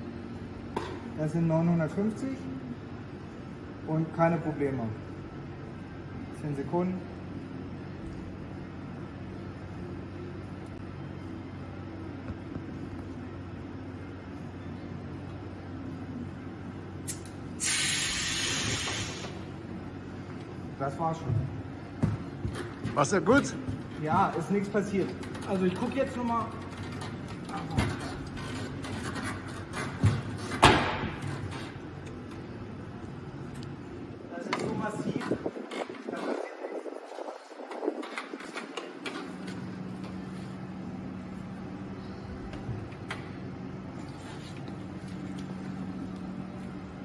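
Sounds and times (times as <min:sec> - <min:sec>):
machinery humming: 0:00.0 - 0:47.0.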